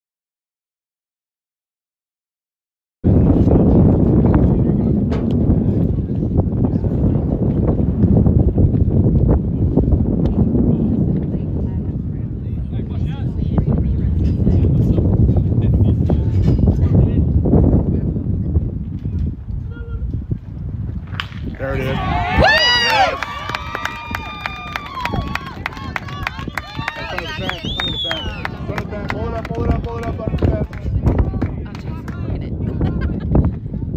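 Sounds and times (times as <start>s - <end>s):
wind buffeting microphone: 3.0s - 33.9s
people cheering and calling out: 21.7s - 33.1s.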